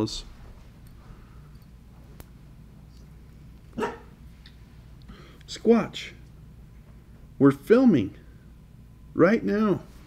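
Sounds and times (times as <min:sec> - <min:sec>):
dog barking: 0:03.8 - 0:04.2.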